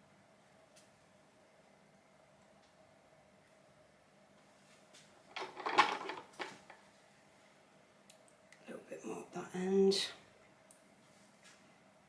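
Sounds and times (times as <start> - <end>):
plastic bucket clattering: 5.3 - 6.7.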